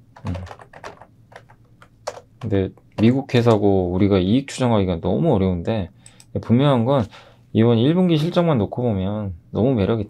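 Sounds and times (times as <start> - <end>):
typing on keyboard: 0.2 - 2.5.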